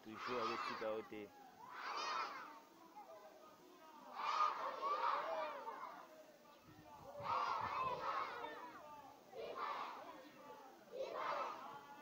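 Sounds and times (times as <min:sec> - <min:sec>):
children shouting in unison: 0:00.0 - 0:03.4, 0:04.0 - 0:06.2, 0:07.0 - 0:11.8.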